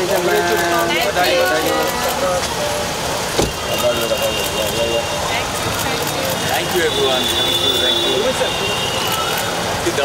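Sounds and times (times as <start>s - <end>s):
chatter of voices: 0.0s - 10.0s
car door shutting: 3.3s - 3.7s.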